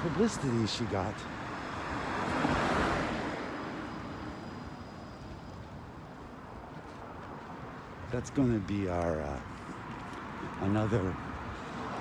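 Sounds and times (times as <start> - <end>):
car driving past: 1.5 - 4.3.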